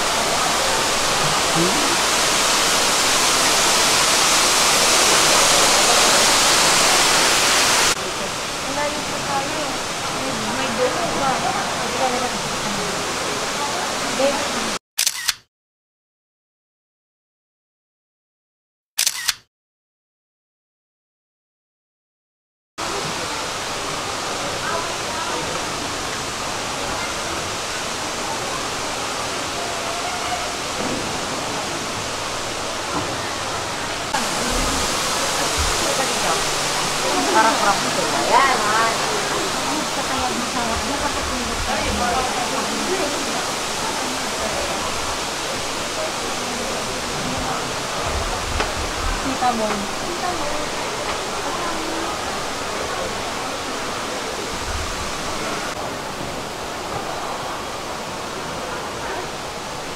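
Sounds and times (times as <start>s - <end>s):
indoor waterfall rushing: 0.0s - 14.8s, 22.8s - 59.9s
visitors' voices: 0.0s - 14.8s, 22.8s - 59.9s.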